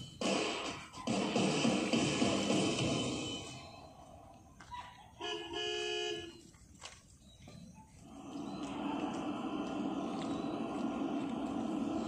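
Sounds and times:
horn tooting: 5.1s - 6.5s
rushing noise: 8.0s - 12.0s.

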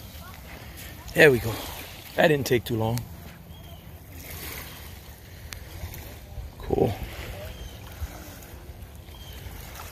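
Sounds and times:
small waves at water's edge: 0.0s - 9.9s.

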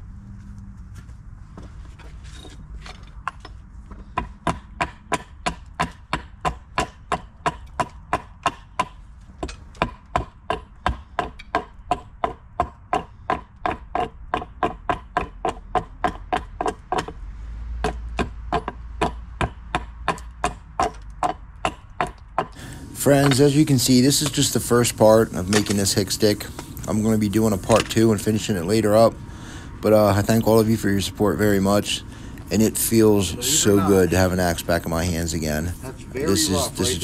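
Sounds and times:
hatchet chopping wood: 4.0s - 17.2s, 17.8s - 23.5s.

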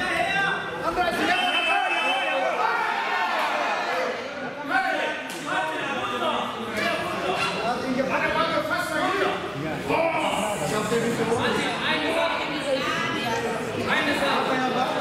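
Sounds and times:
overlapping voices in echoing hall: 0.0s - 15.0s.

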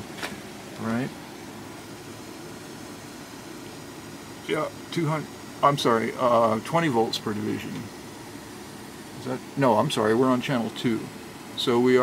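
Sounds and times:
tesla coil hissing and humming: 0.0s - 12.0s.

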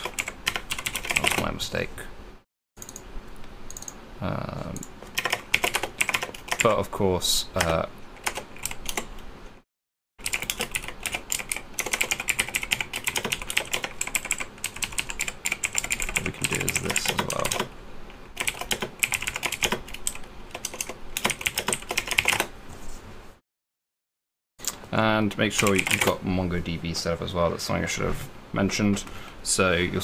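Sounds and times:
rapid keyboard typing: 0.0s - 1.6s, 4.8s - 6.8s, 7.6s - 9.2s, 10.2s - 17.7s, 18.3s - 22.5s, 25.4s - 26.2s.

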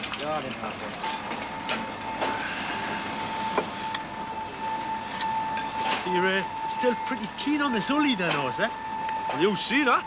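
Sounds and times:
constant high tone: 0.1s - 10.0s
steady hum: 1.0s - 10.0s.

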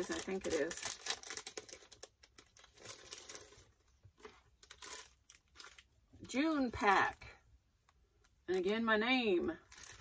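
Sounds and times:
plastic sleeve crinkling and tearing: 0.0s - 6.0s, 9.6s - 10.0s.

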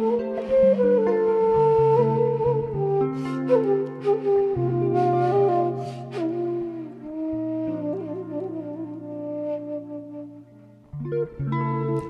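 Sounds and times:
bamboo flute melody: 0.0s - 12.0s.

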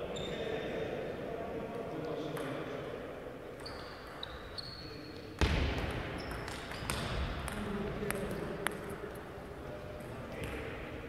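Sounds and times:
shoe squeaks: 0.1s - 0.5s, 3.6s - 5.4s.

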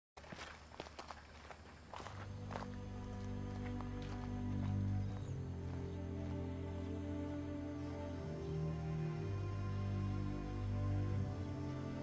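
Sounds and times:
footsteps: 0.2s - 7.0s
soft film score low notes: 1.3s - 12.0s.

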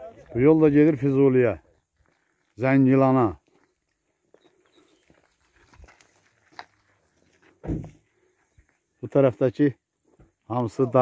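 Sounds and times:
footsteps on gravel: 0.0s - 8.9s
short low thud: 7.6s - 8.0s.

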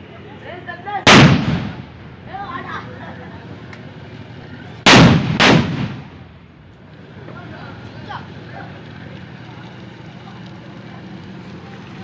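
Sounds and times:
loud firecracker bangs: 1.0s - 2.2s, 4.8s - 6.4s.

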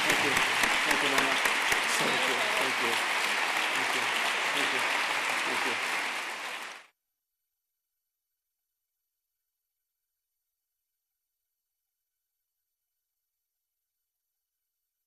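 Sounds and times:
voices: 0.0s - 6.7s
audience clapping: 0.0s - 6.9s.

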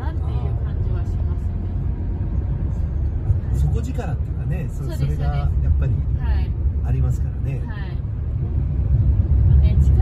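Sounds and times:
tyres on the road: 0.0s - 10.0s
van engine rumble: 0.0s - 10.0s.

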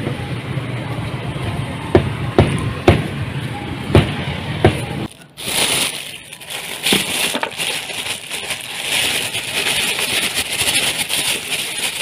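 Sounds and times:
plastic bag crinkling: 5.1s - 12.0s.

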